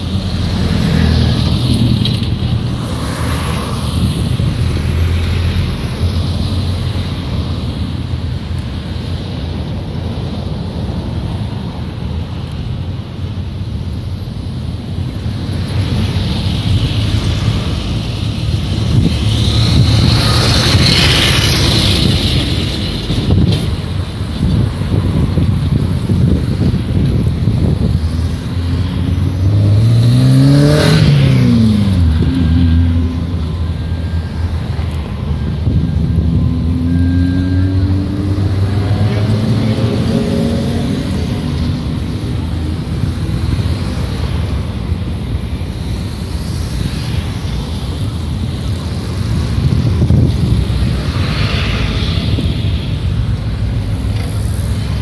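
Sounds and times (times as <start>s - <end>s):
cars driving past: 0.0s - 13.4s, 14.9s - 55.0s.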